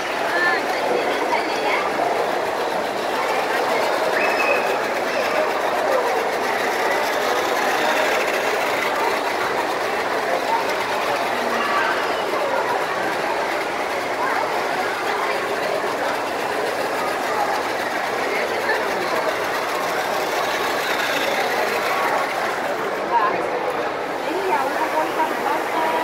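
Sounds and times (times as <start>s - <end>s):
crowd babble: 0.0s - 26.0s
toy trains whirring on track: 0.0s - 26.0s.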